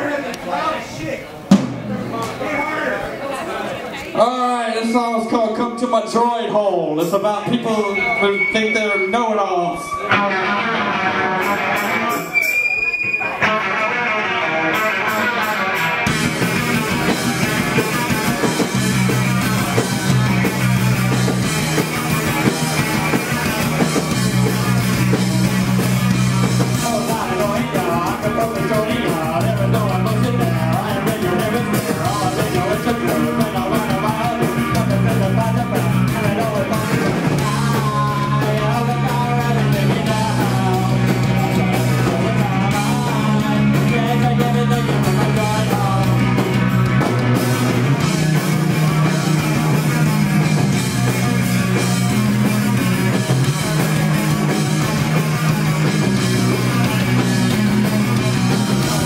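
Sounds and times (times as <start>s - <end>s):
drums: 0.0s - 3.2s, 4.1s - 59.0s
punk rock band playing: 1.4s - 3.1s, 4.2s - 59.0s
electric guitar: 7.5s - 59.0s
person singing: 26.6s - 46.8s.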